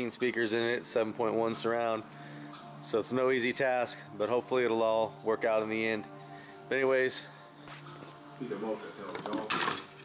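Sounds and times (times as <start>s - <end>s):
background music: 0.0s - 10.0s
man speaking: 8.4s - 9.5s.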